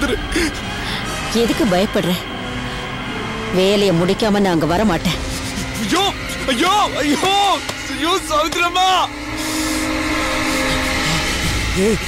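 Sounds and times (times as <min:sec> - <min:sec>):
dramatic music sustained chord: 0:00.0 - 0:12.0.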